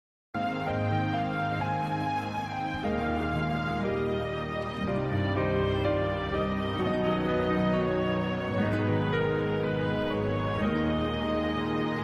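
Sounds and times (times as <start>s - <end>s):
slow ballad instrumental chords: 0.4s - 12.0s.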